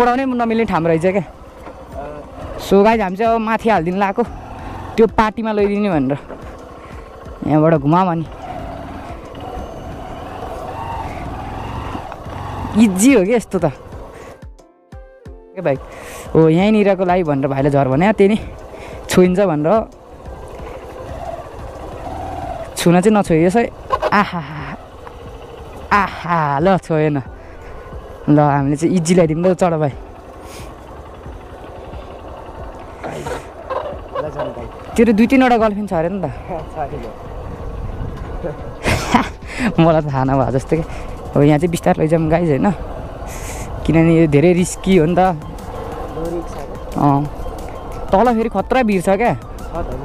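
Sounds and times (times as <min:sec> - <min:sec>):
motorcycle engine running: 0:00.0 - 0:50.0.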